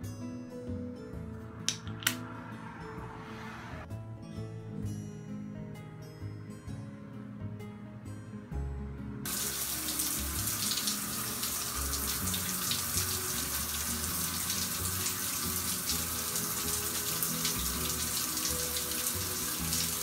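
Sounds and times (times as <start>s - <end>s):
water running: 9.3s - 20.0s.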